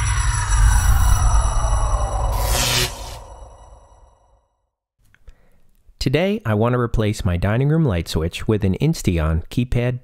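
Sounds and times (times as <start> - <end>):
soft breath: 5.2 - 5.7.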